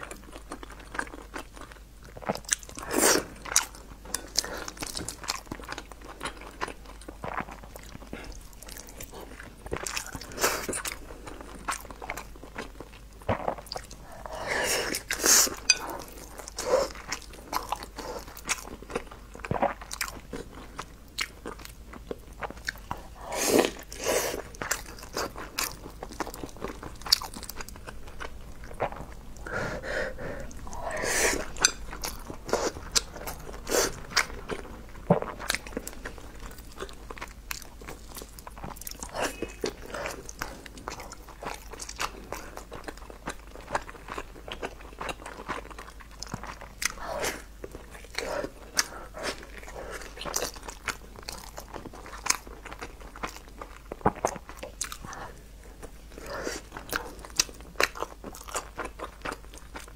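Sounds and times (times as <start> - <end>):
wet chewing and mouth smacking: 14.9 - 29.6, 30.2 - 59.9.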